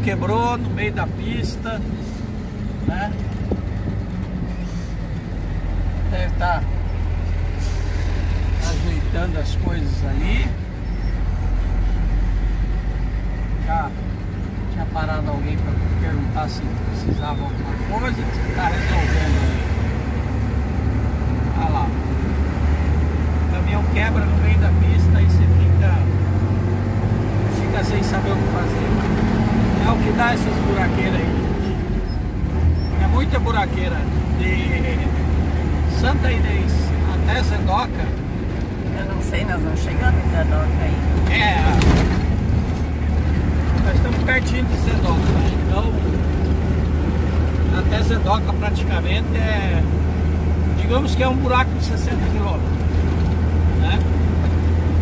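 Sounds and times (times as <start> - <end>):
truck engine droning: 0.0 - 55.0
tyre and road noise: 0.0 - 55.0.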